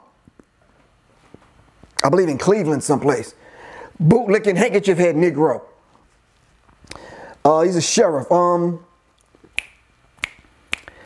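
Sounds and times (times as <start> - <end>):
finger snaps: 9.2 - 11.0.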